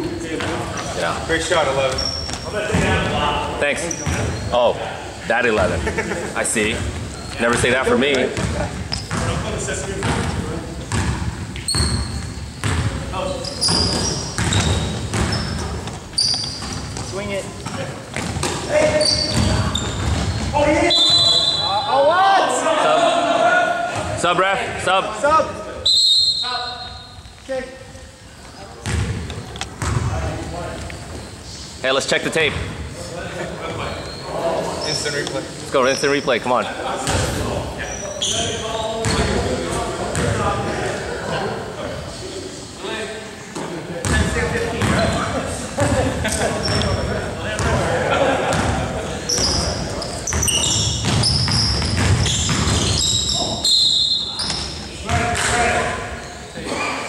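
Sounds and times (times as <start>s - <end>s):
sneakers squeaking on gym floor: 0.1s - 5.8s, 6.6s - 22.0s, 28.4s - 31.8s, 33.6s - 40.5s, 44.0s - 45.3s, 46.3s - 47.8s, 48.5s - 56.9s
basketball bouncing on wooden floor: 10.0s - 13.0s, 13.7s - 18.6s, 28.8s - 30.1s, 50.3s - 53.0s
referee's whistle blast: 20.8s - 21.9s, 25.8s - 27.2s, 52.3s - 54.6s.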